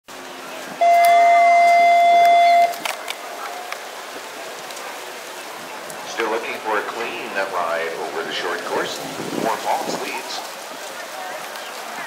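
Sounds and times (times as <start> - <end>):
faint arena background noise: 0.0 - 12.0.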